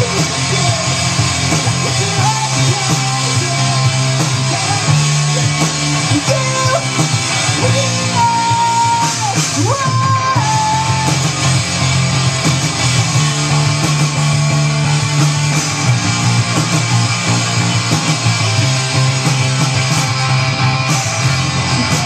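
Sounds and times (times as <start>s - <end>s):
bass guitar: 0.0s - 22.0s
drums: 0.0s - 22.0s
electric guitars: 0.0s - 22.0s
live rock band playing: 0.0s - 22.0s.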